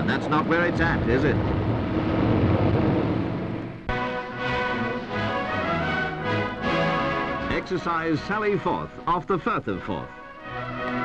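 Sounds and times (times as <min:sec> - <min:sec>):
noisy engine rumble: 0:00.0 - 0:06.6
music: 0:03.9 - 0:11.0.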